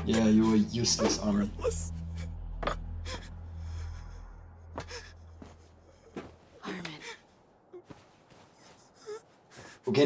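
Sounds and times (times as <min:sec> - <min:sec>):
person sobbing: 0:00.0 - 0:06.2, 0:08.7 - 0:09.7
steady low hum: 0:00.0 - 0:09.9.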